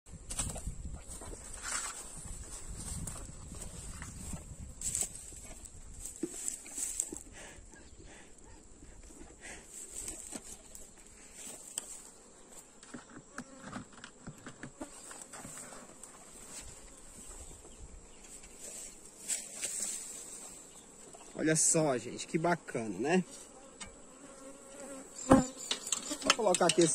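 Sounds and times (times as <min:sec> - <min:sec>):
honeybees buzzing: 0:09.7 - 0:26.9
knocks and scrapes of hive lid: 0:12.6 - 0:16.9, 0:23.4 - 0:26.9.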